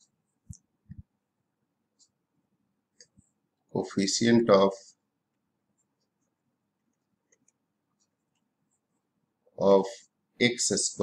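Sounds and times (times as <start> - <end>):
stylus ticking on pen tablet: 1.9 - 2.2, 5.7 - 8.9.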